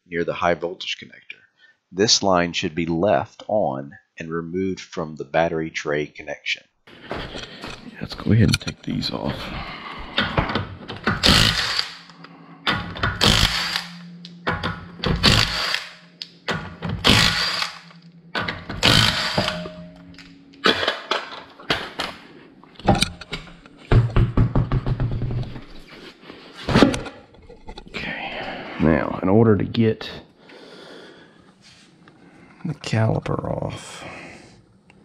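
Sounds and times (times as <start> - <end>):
knocks and thuds: 10.0 - 11.3, 16.5 - 17.2, 22.8 - 25.7
impact wrench spinning: 11.0 - 19.7.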